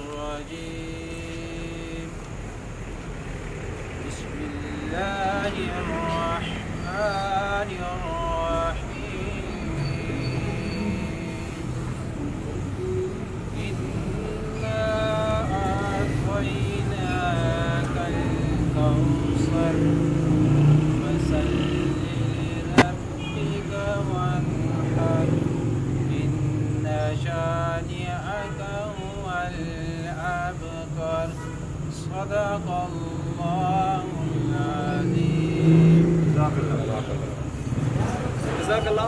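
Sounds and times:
man reciting melodically: 0:00.0 - 0:02.4, 0:04.0 - 0:39.0
road traffic rumble: 0:00.0 - 0:39.0.

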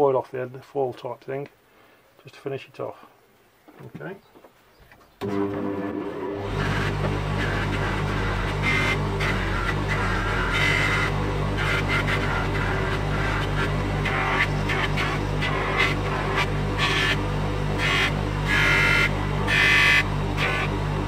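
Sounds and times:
bench grinder motor humming: 0:05.2 - 0:21.0
chisel scrubbing on buffing wheel: 0:06.4 - 0:20.8.

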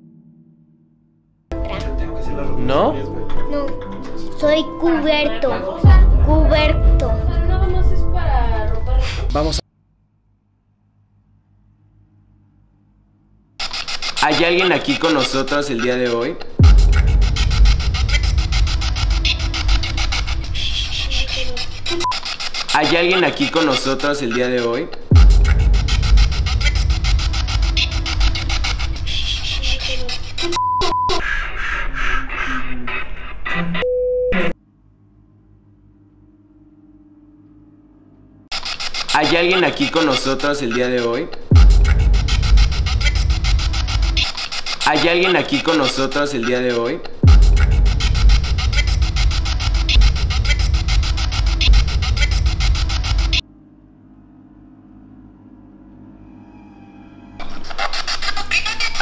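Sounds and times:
deep bass drone: 0:05.8 - 0:09.6, 0:16.6 - 0:22.0, 0:25.1 - 0:30.4, 0:41.5 - 0:44.2, 0:47.2 - 0:53.4
radio static and fragments: 0:13.6 - 0:24.5, 0:25.1 - 0:31.2, 0:38.5 - 0:53.4, 0:57.4 - 0:59.0.

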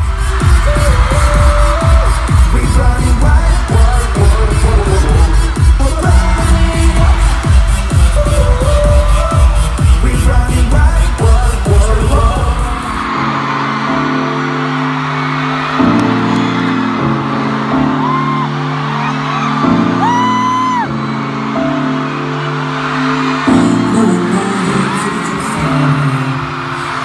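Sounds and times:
fans screaming: 0:00.0 - 0:27.0.

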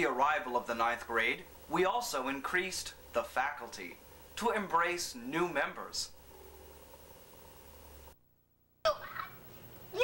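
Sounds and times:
faint tape hum: 0:00.0 - 0:10.0.

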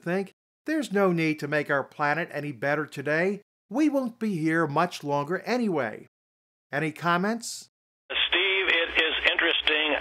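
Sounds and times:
man speaking over telephone: 0:06.7 - 0:10.0.

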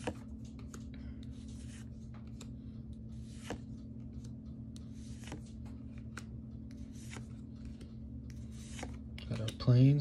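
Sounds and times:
cards swishing: 0:03.2 - 0:03.7, 0:04.8 - 0:09.4.

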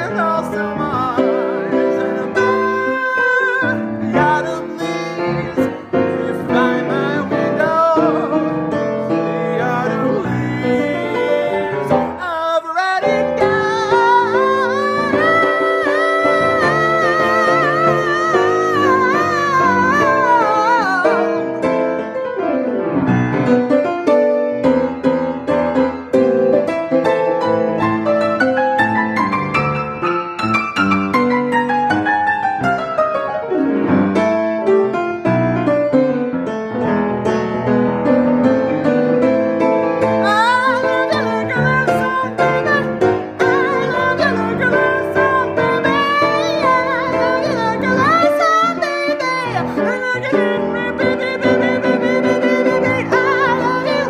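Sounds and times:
person singing without words: 0:00.0 - 0:22.2, 0:40.0 - 0:54.0
jazz piano chords: 0:00.0 - 0:54.0.

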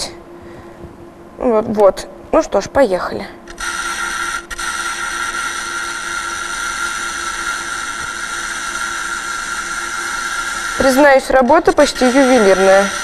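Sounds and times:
simulated welding hiss: 0:03.5 - 0:13.0.

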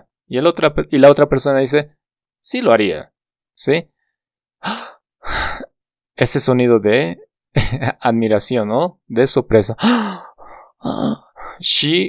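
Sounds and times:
man exhaling breathily: 0:09.8 - 0:11.6.

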